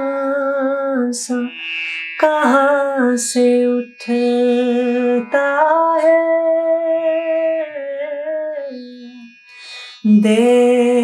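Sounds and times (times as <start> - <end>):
woman singing: 0.0 - 1.6, 2.2 - 11.0.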